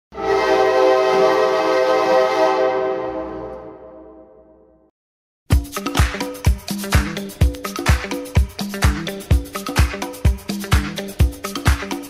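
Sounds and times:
loud horn-like sustained chord: 0:00.1 - 0:04.7.

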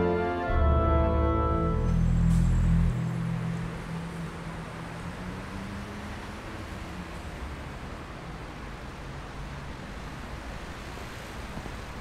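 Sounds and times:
distant city traffic: 0:00.5 - 0:12.0.

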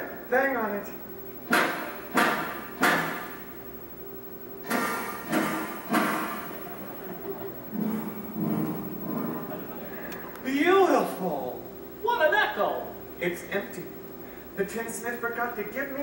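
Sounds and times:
knocks on hollow metal: 0:01.5 - 0:03.4.

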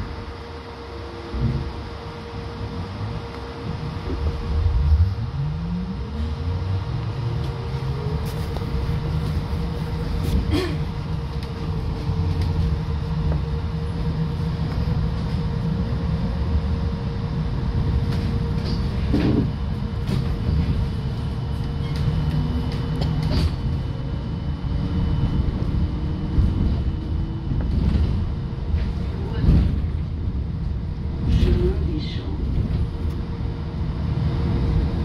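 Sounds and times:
trolleybus rumble: 0:00.0 - 0:35.0.

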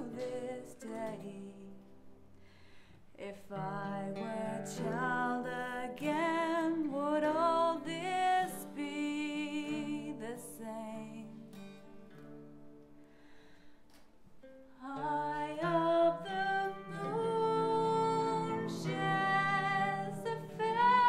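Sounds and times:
woman singing a lullaby: 0:00.0 - 0:02.0, 0:03.2 - 0:11.6, 0:14.8 - 0:21.0
plucked acoustic guitar: 0:00.0 - 0:02.4, 0:03.4 - 0:21.0.

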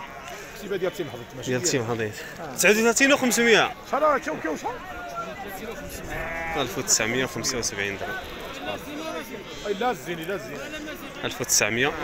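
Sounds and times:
men talking: 0:00.0 - 0:12.0
sheep bleating: 0:05.9 - 0:10.4.

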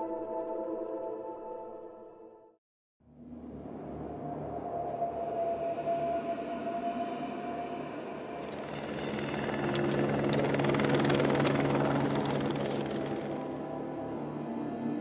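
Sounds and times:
helicopter flying: 0:08.4 - 0:14.9.

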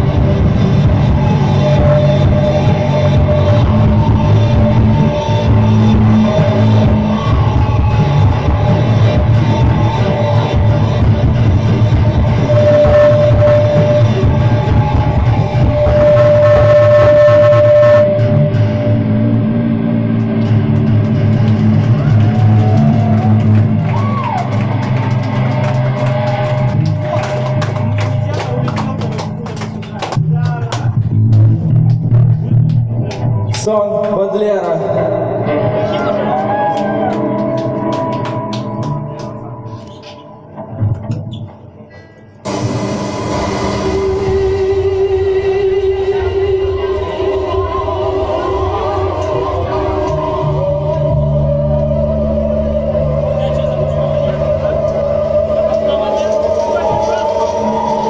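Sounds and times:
post-punk band playing live: 0:00.0 - 0:58.0.

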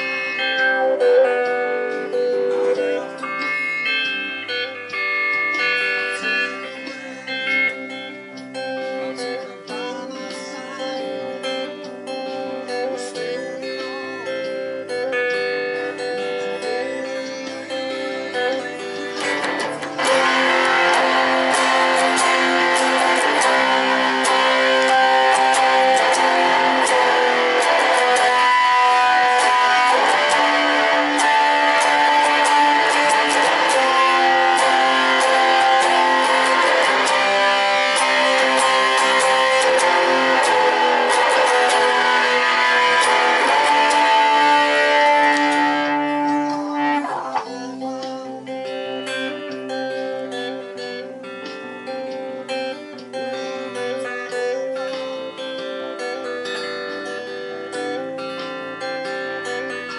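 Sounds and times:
electric guitar playing: 0:00.0 - 0:59.9.

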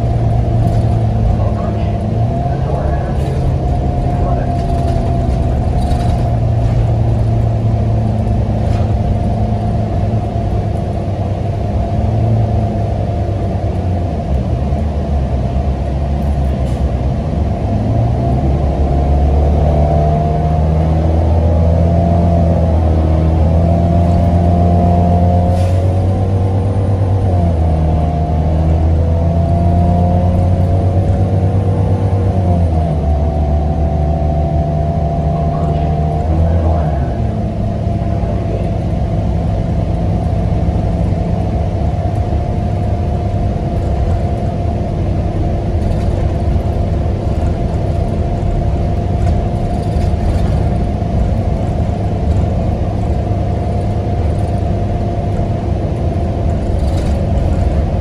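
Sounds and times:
bus engine hum and whine: 0:00.0 - 0:58.0.

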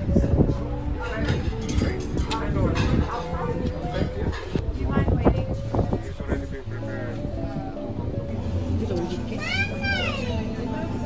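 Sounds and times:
low background voices: 0:00.0 - 0:11.0.

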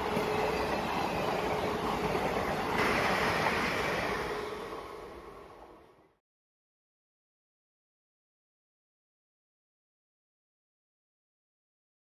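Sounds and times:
passenger train passing: 0:00.0 - 0:06.2.

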